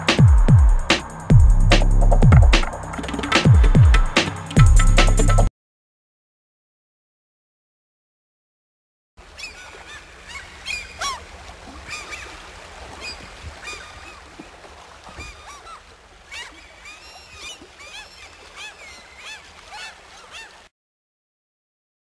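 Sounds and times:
gulls calling: 0:09.2 - 0:20.7.

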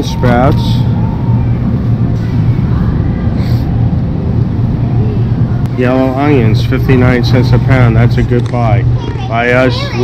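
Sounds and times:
low rumble with a hum: 0:00.0 - 0:10.0.

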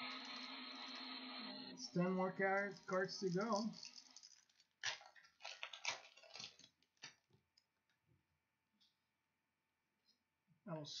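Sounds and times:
plastic wrapper crinkling: 0:02.5 - 0:07.6.

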